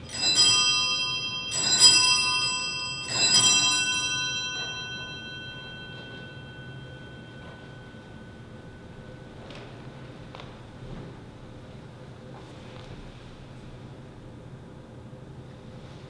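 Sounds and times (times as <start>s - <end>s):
small brass bells shaken: 0.0s - 9.0s.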